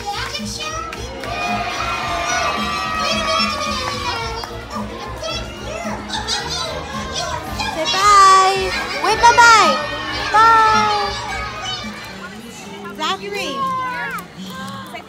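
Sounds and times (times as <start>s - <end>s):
children calling out and squealing: 0.4s - 12.3s, 13.4s - 14.3s.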